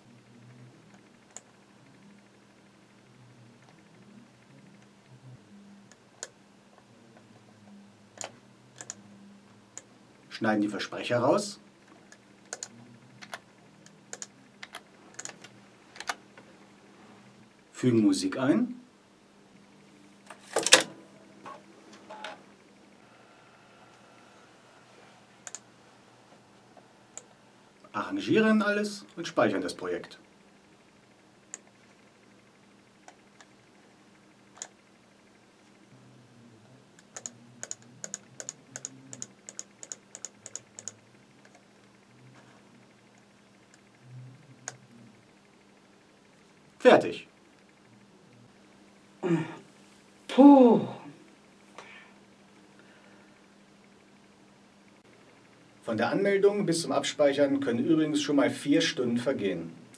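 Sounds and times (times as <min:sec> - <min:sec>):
faint steady hum: 0:00.0 - 0:59.9
computer keyboard and mouse clicks: 0:08.2 - 0:09.0, 0:12.1 - 0:16.2, 0:25.4 - 0:25.6, 0:34.5 - 0:34.8, 0:37.0 - 0:41.6
keyboard keys tapping: 0:37.0 - 0:41.6.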